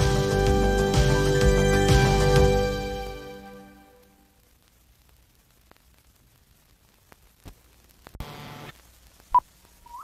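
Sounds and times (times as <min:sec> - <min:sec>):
buzzing noise: 0:08.2 - 0:10.0.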